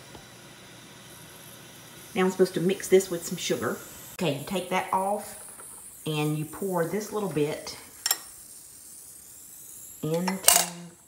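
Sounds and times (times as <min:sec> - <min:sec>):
faint steady hiss: 0:00.0 - 0:11.0
metallic clink of moka pot: 0:08.0 - 0:08.4, 0:10.1 - 0:11.0.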